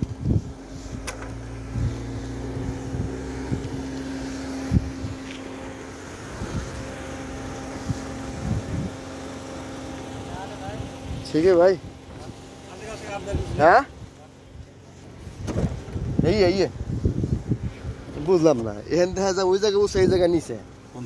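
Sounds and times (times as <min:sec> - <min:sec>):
car engine running: 0:00.0 - 0:21.0.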